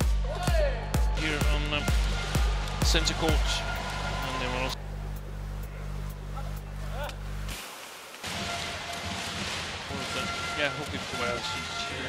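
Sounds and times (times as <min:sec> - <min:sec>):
low steady hum: 0:03.6 - 0:07.8.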